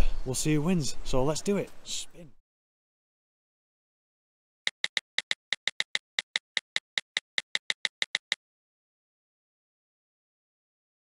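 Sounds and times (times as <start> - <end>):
spinner wheel ticking clicks: 4.7 - 8.4.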